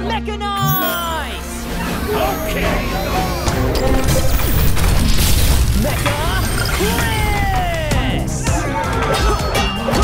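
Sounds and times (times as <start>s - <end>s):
energetic background music: 0.0s - 10.0s.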